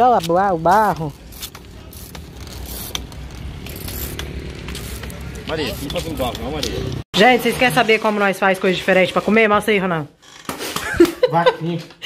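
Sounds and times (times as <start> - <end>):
bicycle parts clicking and rattling: 0.0 - 7.0.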